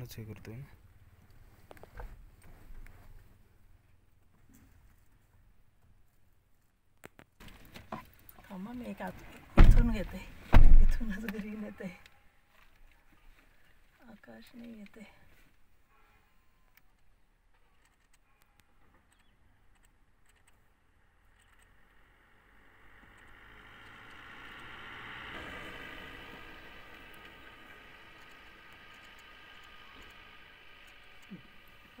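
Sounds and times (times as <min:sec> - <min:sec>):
passing motor vehicle: 0:20.8 - 0:32.0.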